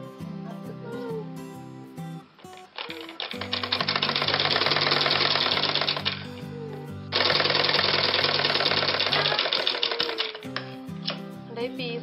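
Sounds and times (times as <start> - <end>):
background music: 0.0 - 12.0
sewing machine stitching: 2.8 - 6.2, 7.1 - 10.5.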